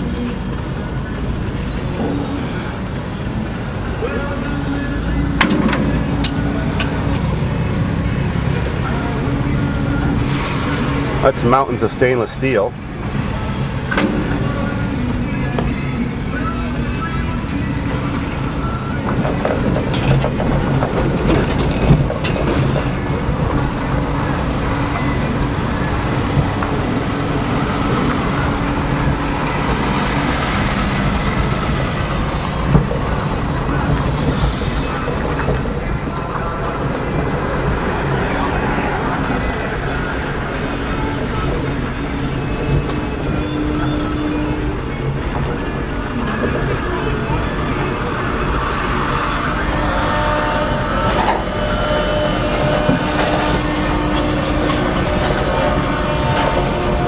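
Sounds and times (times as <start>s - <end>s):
vehicle engine droning: 0.0s - 57.0s.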